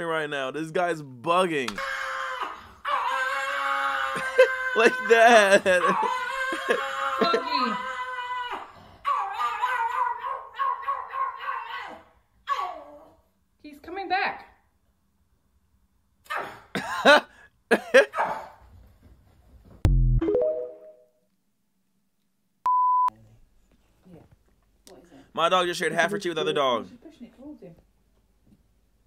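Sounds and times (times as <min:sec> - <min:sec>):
dog howling: 0:01.9 - 0:13.0
electronic beep: 0:22.7 - 0:23.1.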